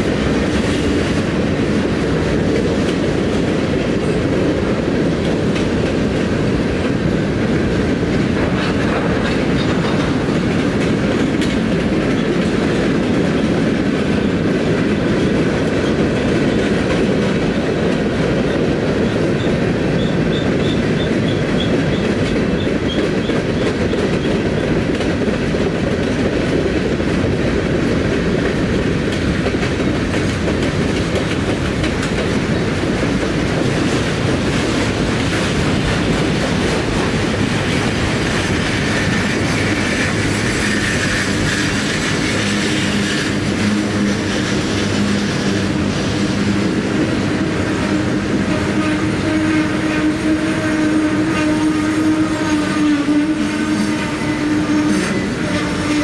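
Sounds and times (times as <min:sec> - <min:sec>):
train wheels on rails: 0:00.0 - 0:56.0.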